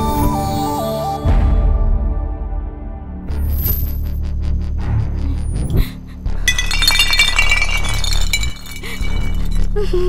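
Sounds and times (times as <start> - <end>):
glass shattering: 6.5 - 9.7
glass pieces tinkling: 6.5 - 9.8.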